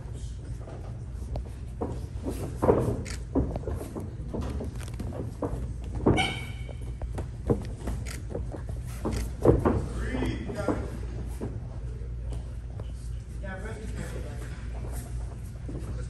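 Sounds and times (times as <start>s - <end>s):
low hum of hall: 0.0s - 16.0s
brief high squeak: 6.2s - 6.7s.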